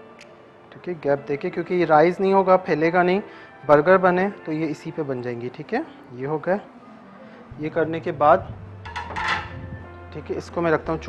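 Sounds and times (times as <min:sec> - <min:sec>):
metal baking tray clattering: 0:08.8 - 0:09.6.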